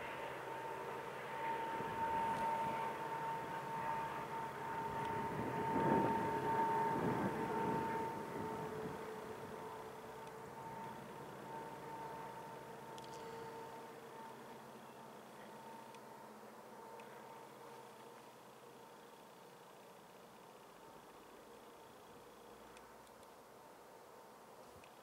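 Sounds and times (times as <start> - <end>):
diesel train rumble: 0.0 - 17.6
steady high whine: 0.0 - 25.0.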